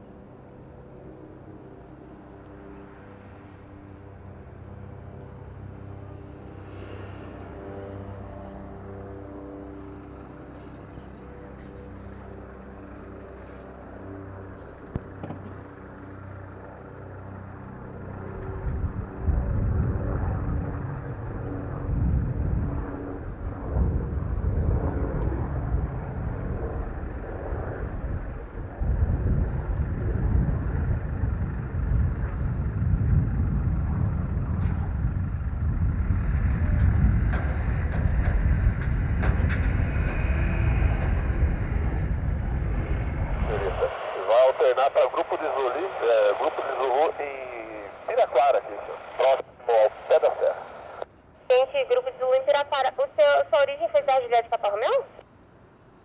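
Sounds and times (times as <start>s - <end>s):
low rumble: 18.1s - 51.6s
voices over radio: 43.4s - 55.2s.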